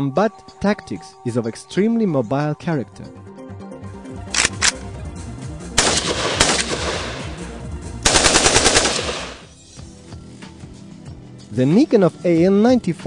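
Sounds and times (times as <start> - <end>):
automatic gunfire burst: 5.8 - 7.3, 8.1 - 9.5
assault rifle shots: 5.8 - 9.5.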